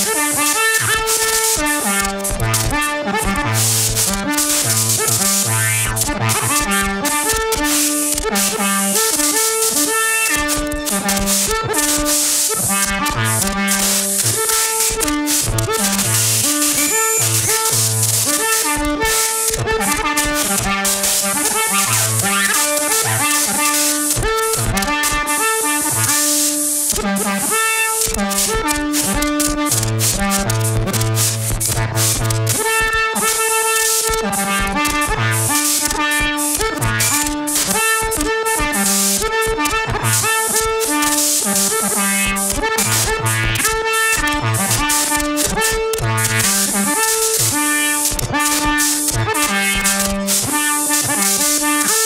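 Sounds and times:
clicks and hiss: 0.0s - 52.0s.

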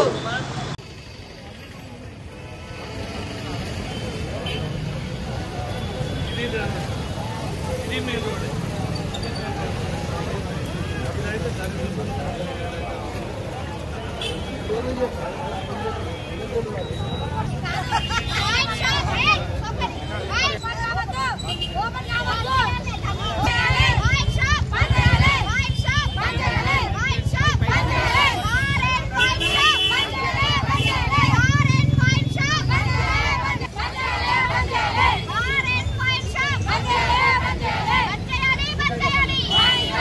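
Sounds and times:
crowd of protesters: 0.0s - 40.0s
high-pitched shouting: 23.4s - 40.0s.

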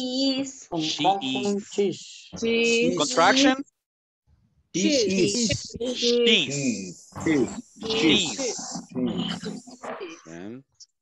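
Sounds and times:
indistinct speech over video call: 0.0s - 3.8s, 4.7s - 11.0s.

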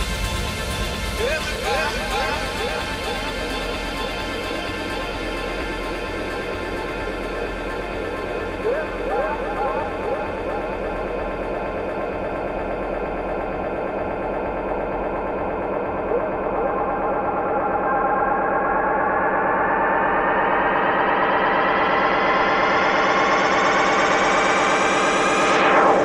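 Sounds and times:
pulsing synthesizer dance music: 0.0s - 26.0s.

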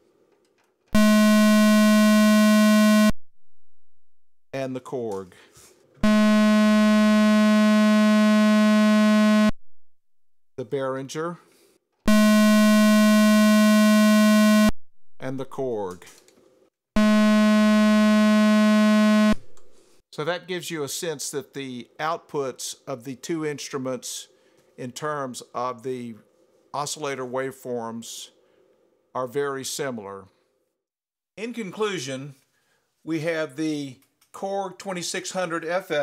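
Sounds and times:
synthesizer square wave tone: 1.0s - 3.2s, 6.0s - 9.6s, 12.1s - 14.7s, 17.0s - 19.5s.

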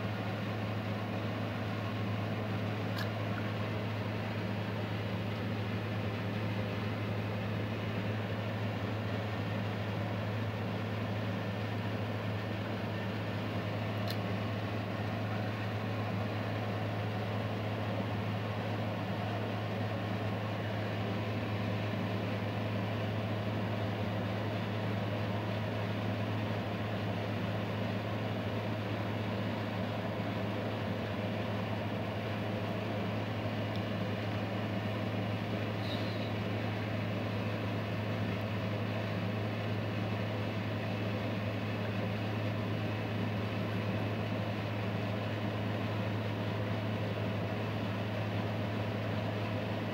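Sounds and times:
steady low hum: 0.0s - 49.9s.

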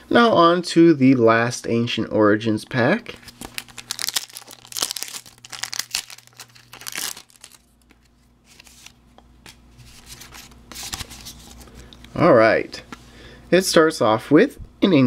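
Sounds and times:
foil wrapper tearing and crinkling: 3.2s - 8.9s.

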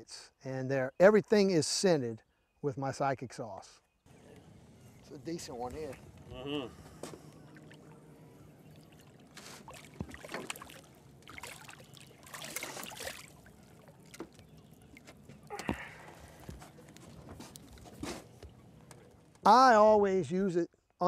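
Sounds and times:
fish splashing at water surface: 8.8s - 18.4s.

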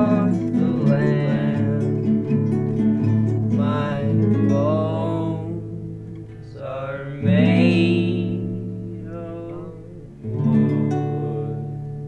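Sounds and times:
acoustic guitar strummed: 0.0s - 12.0s
person singing: 0.0s - 12.0s.

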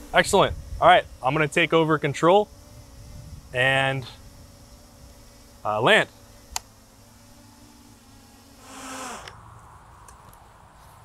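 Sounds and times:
quadcopter motors humming: 0.0s - 11.0s.

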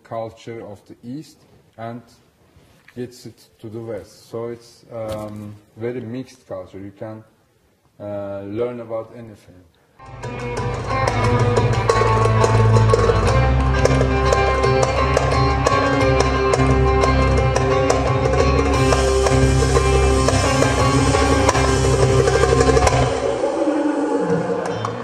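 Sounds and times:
heavy bass: 10.0s - 25.0s
percussion pulse: 10.0s - 25.0s
plucked electric saz: 10.0s - 25.0s
cymbal wash: 18.7s - 24.7s.

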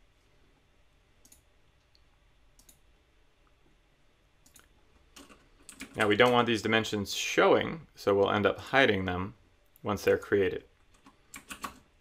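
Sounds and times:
computer mouse clicks: 1.2s - 2.8s, 4.4s - 6.4s, 10.8s - 11.9s.

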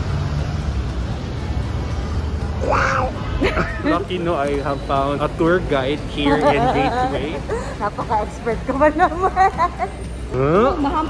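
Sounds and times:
people talking: 3.4s - 9.7s.

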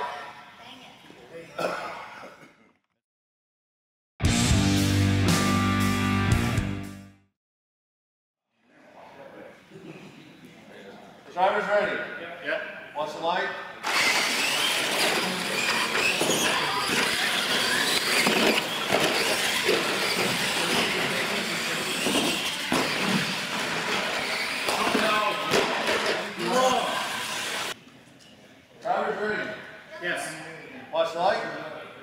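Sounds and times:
electric toy truck motors whining: 13.8s - 25.3s, 25.9s - 27.8s
tyres rushing over concrete: 13.8s - 27.8s.

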